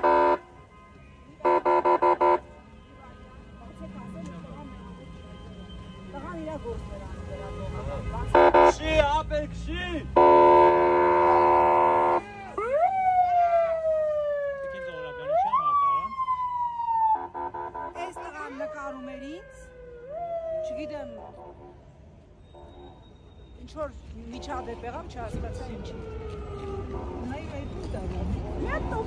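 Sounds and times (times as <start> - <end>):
police siren: 0.0 - 9.0, 10.0 - 23.4, 24.4 - 29.0.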